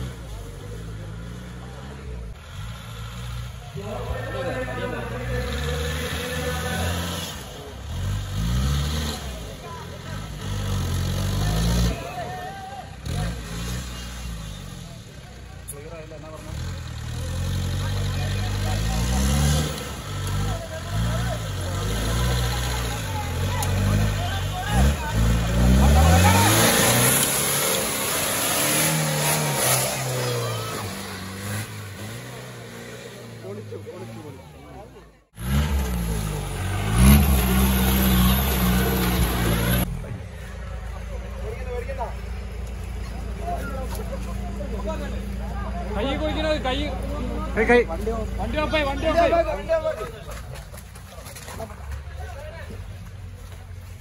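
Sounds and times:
jeep engine revving: 0:00.0 - 0:51.8
onlookers' voices: 0:00.0 - 0:54.0.

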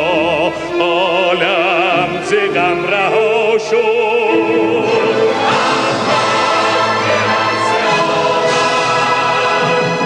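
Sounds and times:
mixed choir singing: 0:00.0 - 0:10.0
symphony orchestra playing: 0:00.0 - 0:10.0.

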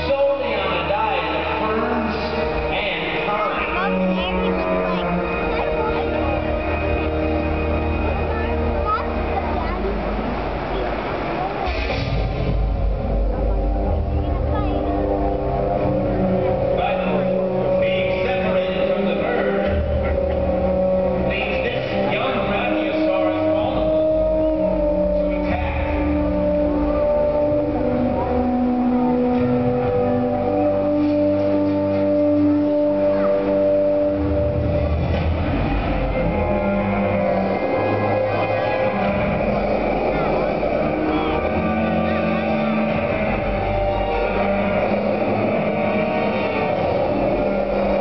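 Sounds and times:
low rumble with sustained tones: 0:00.0 - 0:48.0.

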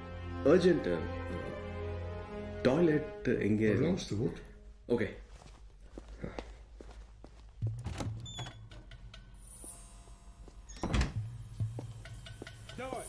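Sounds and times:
footsteps on hard floor: 0:05.3 - 0:08.2, 0:11.4 - 0:12.1.

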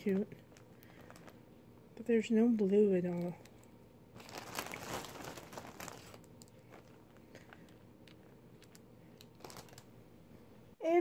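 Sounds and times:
plastic rustling and crinkling: 0:00.0 - 0:09.9.

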